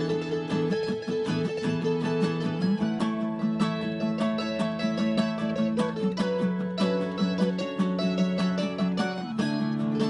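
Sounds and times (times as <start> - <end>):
acoustic guitar accompaniment: 0.0 - 10.0
mandolin picked notes: 0.0 - 10.0.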